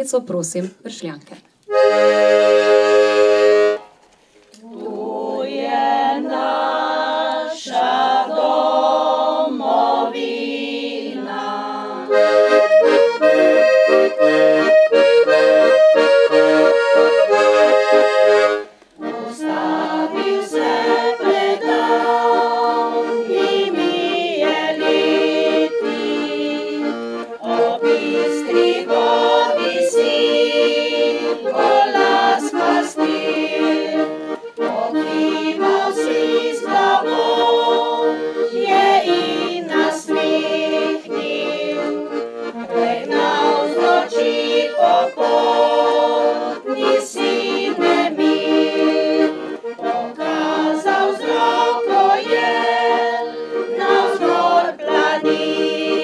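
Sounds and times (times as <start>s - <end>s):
women's choir singing: 1.7s - 3.8s, 4.6s - 56.0s
piano accordion folk tune: 1.7s - 56.0s.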